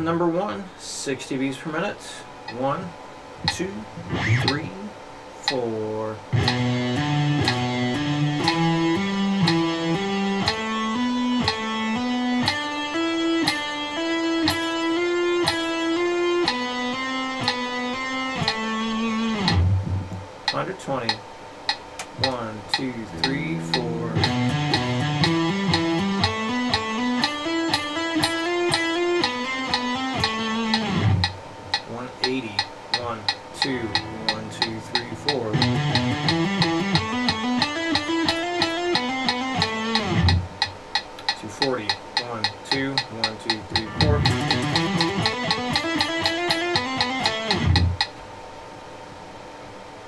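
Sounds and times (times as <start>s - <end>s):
faint steady hum: 0.0s - 50.0s
metronome clicks: 3.4s - 4.8s, 5.4s - 5.7s, 6.4s - 48.2s
electric guitar legato notes: 3.9s - 4.7s, 6.2s - 20.6s, 22.2s - 31.7s, 32.4s - 40.9s, 43.2s - 48.2s.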